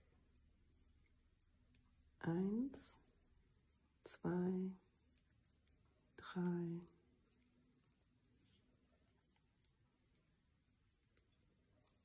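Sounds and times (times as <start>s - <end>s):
knitting needles clicking: 0.0s - 3.3s, 4.8s - 12.0s
woman speaking: 2.2s - 3.0s, 4.1s - 4.8s, 6.2s - 6.9s.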